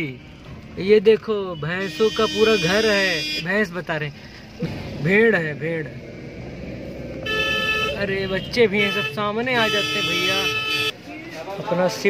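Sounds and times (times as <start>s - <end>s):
vehicle horn: 1.6s - 3.5s, 7.2s - 11.0s.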